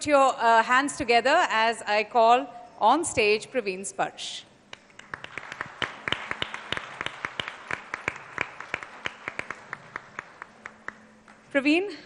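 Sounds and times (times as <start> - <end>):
audience applauding: 4.8 - 11.5.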